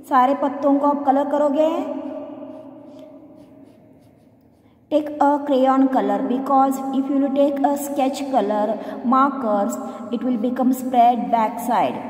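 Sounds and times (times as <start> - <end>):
crayon rubbing on paper: 2.5 - 5.1.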